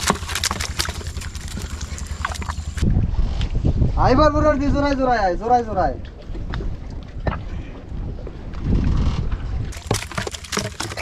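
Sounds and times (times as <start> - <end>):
steady low hum: 0.0 - 3.2
prawns pattering into plastic crate: 9.7 - 11.0.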